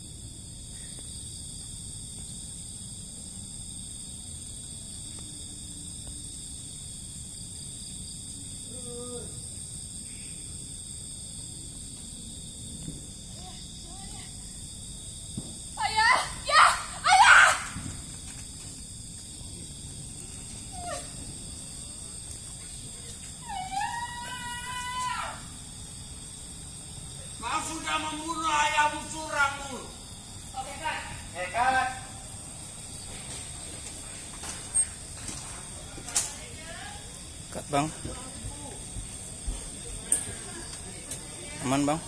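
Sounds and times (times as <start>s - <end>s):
high-pitched hiss: 0.0s - 42.0s
wailing cry: 15.8s - 17.7s, 23.4s - 25.5s
steady low background noise: 24.4s - 42.0s
faint voices: 35.2s - 42.0s.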